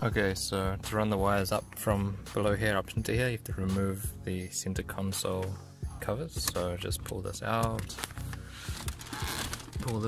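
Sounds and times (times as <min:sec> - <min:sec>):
background music: 0:00.0 - 0:10.0
plastic trim scraping and rustling: 0:07.6 - 0:10.0.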